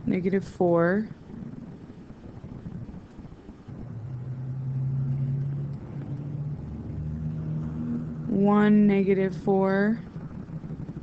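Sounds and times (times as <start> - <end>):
low engine-like hum: 0.0 - 11.0.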